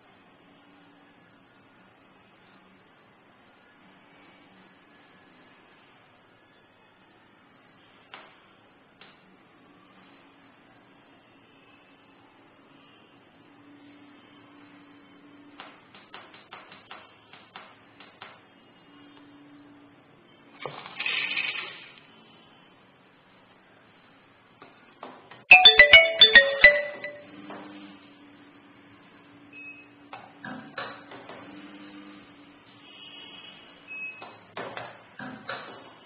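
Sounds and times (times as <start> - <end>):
electronic marimba melody: 25.5 - 27.3.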